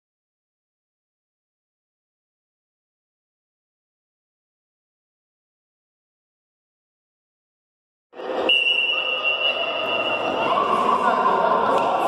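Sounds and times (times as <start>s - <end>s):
children in echoing sports hall: 8.2s - 12.0s.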